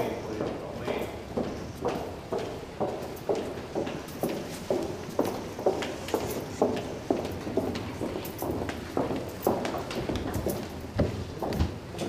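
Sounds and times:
footsteps on hard floor: 0:00.4 - 0:12.0.

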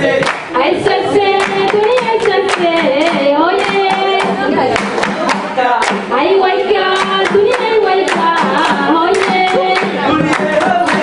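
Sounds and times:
group singing folk song: 0:00.0 - 0:11.0
hand claps: 0:00.2 - 0:11.0.

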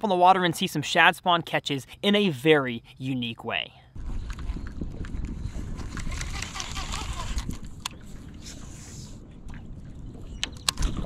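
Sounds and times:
water lapping around boat: 0:04.0 - 0:11.0
wind rumble on microphone: 0:04.0 - 0:11.0.

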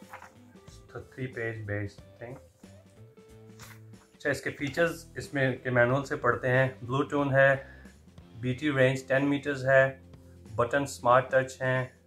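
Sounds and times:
paper rustling: 0:00.0 - 0:00.5, 0:03.5 - 0:03.9
faint background music: 0:00.0 - 0:12.0.

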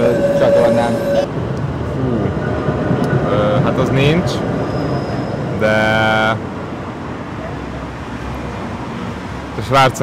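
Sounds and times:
city street traffic: 0:00.0 - 0:10.0
tram passing: 0:00.0 - 0:10.0.

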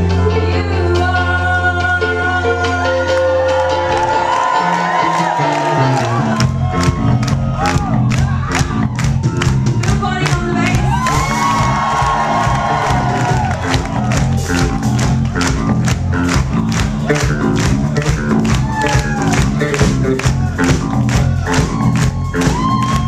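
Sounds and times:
bass guitar: 0:00.0 - 0:23.0
drum kit beat: 0:00.0 - 0:23.0
electric guitar: 0:00.0 - 0:23.0
crowd cheering: 0:03.0 - 0:23.0.

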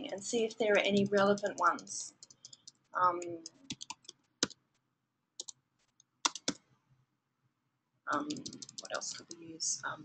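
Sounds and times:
computer keyboard key clicks: 0:06.3 - 0:06.6.

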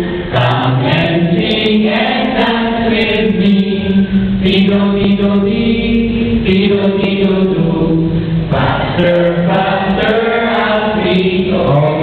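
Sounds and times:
young voices singing a cappella: 0:00.0 - 0:12.0.

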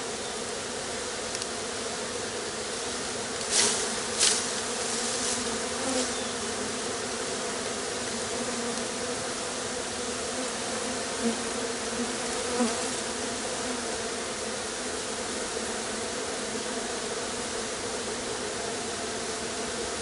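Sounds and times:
honeybee swarm buzzing: 0:00.0 - 0:20.0.

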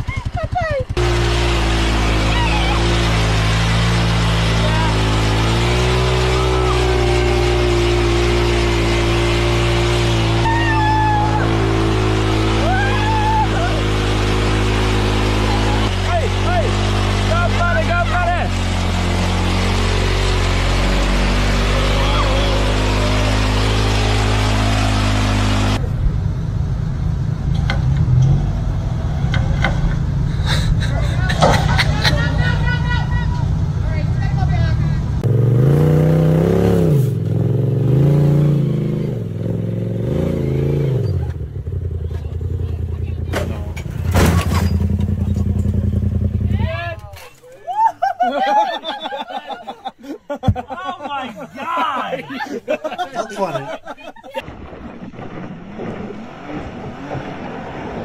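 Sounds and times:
engine revving: 0:00.0 - 0:26.3, 0:27.2 - 0:47.0
engine droning: 0:00.0 - 0:47.4
voices: 0:02.2 - 0:03.2, 0:15.2 - 0:18.8, 0:21.6 - 0:23.8, 0:30.7 - 0:35.1, 0:41.1 - 0:44.0, 0:45.0 - 0:54.4.

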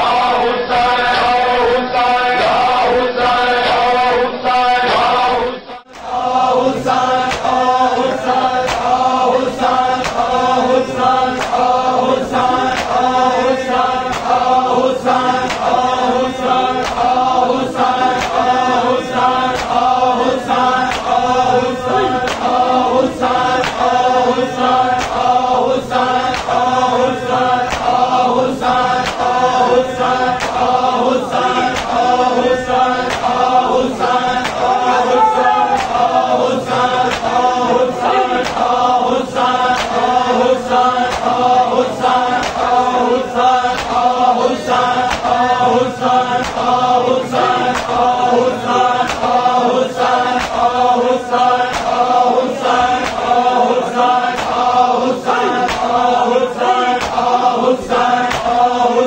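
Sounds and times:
men chanting together: 0:00.0 - 0:59.0
hands slapping chests: 0:07.2 - 0:07.6, 0:08.6 - 0:09.0, 0:10.0 - 0:10.4, 0:11.3 - 0:11.8, 0:12.7 - 0:13.1, 0:14.0 - 0:14.5, 0:15.4 - 0:15.8, 0:16.8 - 0:17.2, 0:18.1 - 0:18.5, 0:19.5 - 0:19.9, 0:20.8 - 0:21.2, 0:22.2 - 0:22.6, 0:23.6 - 0:24.0, 0:25.0 - 0:25.3, 0:26.3 - 0:26.6, 0:27.7 - 0:28.0, 0:29.0 - 0:29.4, 0:30.3 - 0:30.7, 0:31.7 - 0:32.1, 0:33.0 - 0:33.5, 0:34.4 - 0:36.1, 0:37.1 - 0:37.5, 0:38.4 - 0:38.8, 0:39.7 - 0:40.0, 0:41.0 - 0:41.4, 0:42.3 - 0:42.8, 0:43.7 - 0:44.1, 0:45.1 - 0:45.4, 0:46.4 - 0:46.8, 0:47.7 - 0:48.0, 0:49.0 - 0:49.4, 0:50.4 - 0:50.6, 0:51.7 - 0:52.0, 0:52.8 - 0:53.3, 0:54.3 - 0:54.7, 0:55.6 - 0:56.0, 0:57.0 - 0:57.3, 0:58.2 - 0:58.6.

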